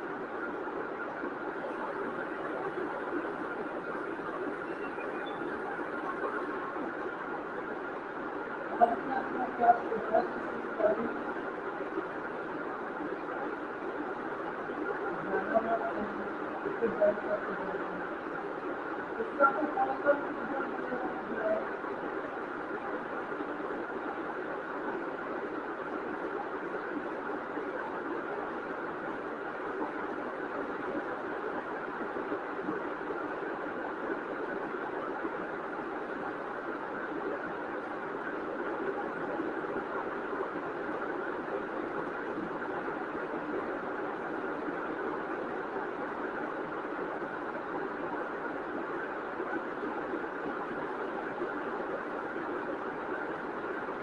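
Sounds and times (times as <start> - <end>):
steady background noise: 0.0 - 54.0.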